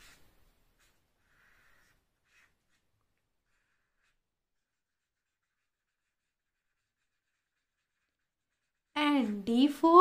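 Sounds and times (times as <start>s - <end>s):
marker scratching on paper: 0.0s - 10.0s.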